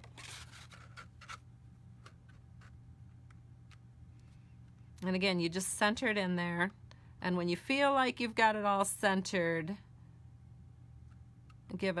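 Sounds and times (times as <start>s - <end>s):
paper rustle: 0.0s - 1.4s.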